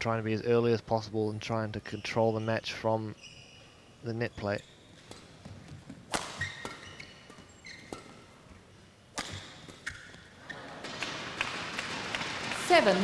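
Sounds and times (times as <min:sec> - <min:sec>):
court shoes squeaking: 0:01.8 - 0:12.3
rackets striking shuttlecock: 0:05.0 - 0:12.4.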